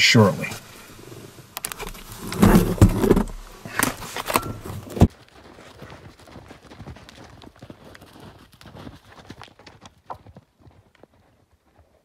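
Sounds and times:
hooves thudding in snow: 0:04.7 - 0:12.0.

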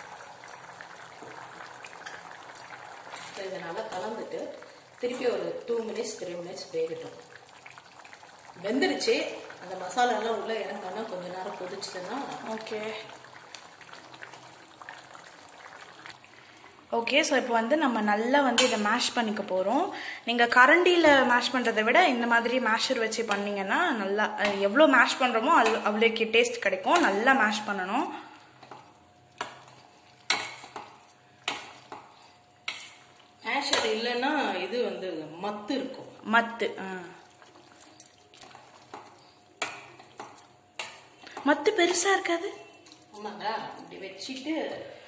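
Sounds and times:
thick mixture bubbling: 0:00.0 - 0:18.4, 0:21.4 - 0:43.2
utensil mashing food in metal pan: 0:28.6 - 0:34.0, 0:37.4 - 0:41.5.

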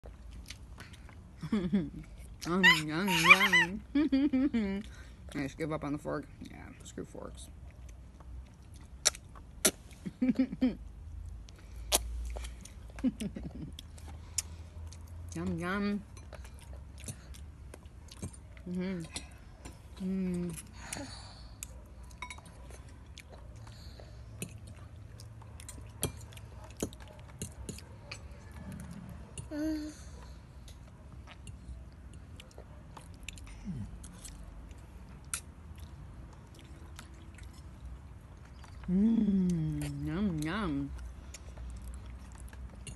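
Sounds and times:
toddler chewing and smacking: 0:00.0 - 0:03.8, 0:04.8 - 0:10.2, 0:10.8 - 0:42.9
low background hum: 0:00.0 - 0:42.9.

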